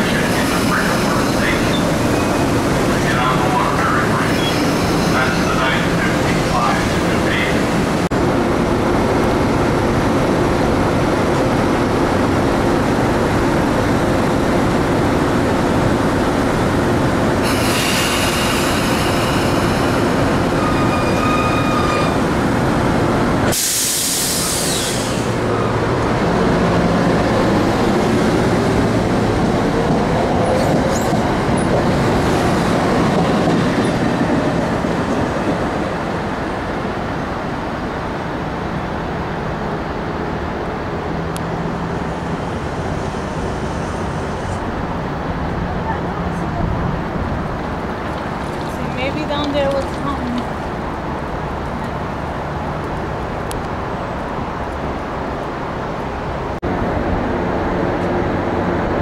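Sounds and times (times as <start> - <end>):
electric train rumble and hum: 0.0 - 59.0
wheel squeal: 20.5 - 22.2.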